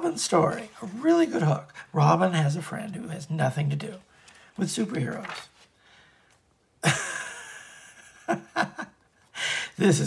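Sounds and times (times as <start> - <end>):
paper rustling: 0.0 - 1.7, 3.5 - 5.8
person chuckling: 6.8 - 9.2.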